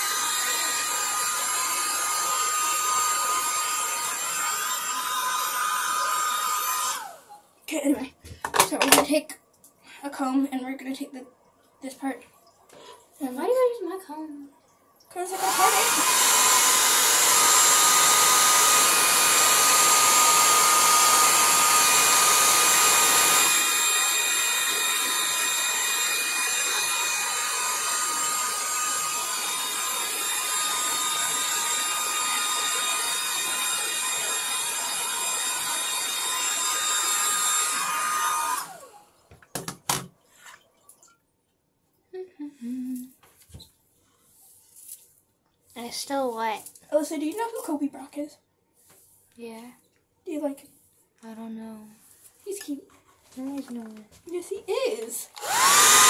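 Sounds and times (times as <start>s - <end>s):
hair dryer running: 0.0s - 7.4s, 15.3s - 40.0s, 55.3s - 56.0s.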